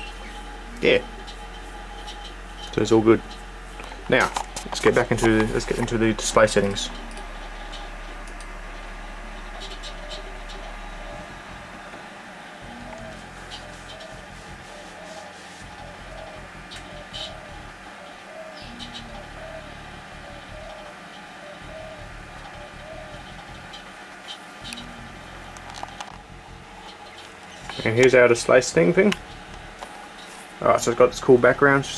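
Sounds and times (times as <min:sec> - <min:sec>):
computer equipment humming: 0:00.0 - 0:31.9.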